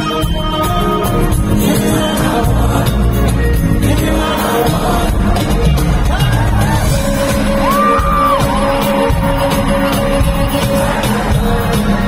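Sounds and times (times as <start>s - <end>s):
live pop band with vocals: 0.0s - 12.0s.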